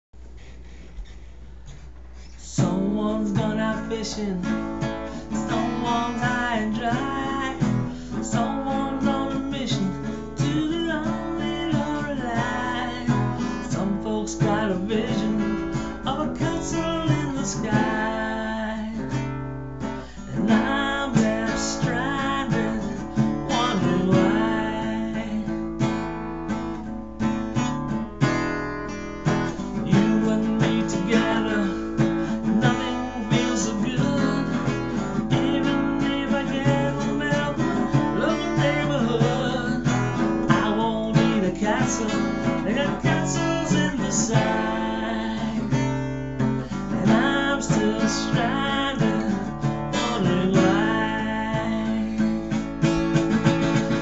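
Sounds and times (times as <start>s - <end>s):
acoustic guitar strummed and picked: 0.3s - 54.0s
man singing: 2.4s - 19.4s, 20.1s - 26.0s, 29.6s - 54.0s.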